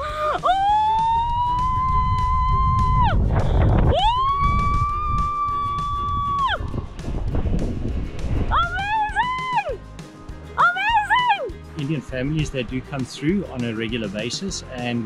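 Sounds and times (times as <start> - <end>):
woman screaming: 0.0 - 3.2, 3.9 - 6.7, 8.5 - 9.8, 10.6 - 11.5
wind on microphone: 0.6 - 9.8.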